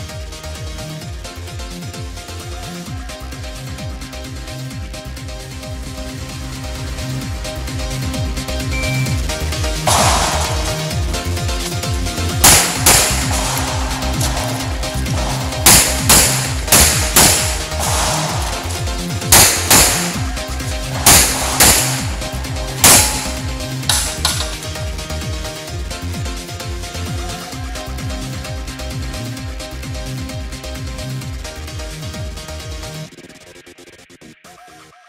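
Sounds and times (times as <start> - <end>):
electronic dance music: 6.4 - 30.3
pistol shots: 9.9 - 11.4, 12.4 - 24.6.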